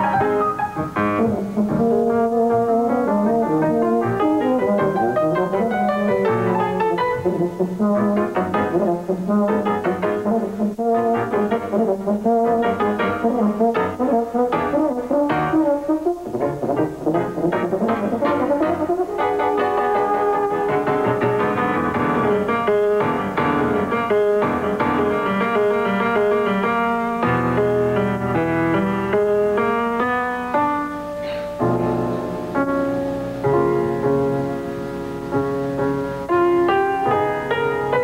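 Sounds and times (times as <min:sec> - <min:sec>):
piano accompaniment: 0:00.0 - 0:38.0
euphonium solo: 0:01.0 - 0:28.8.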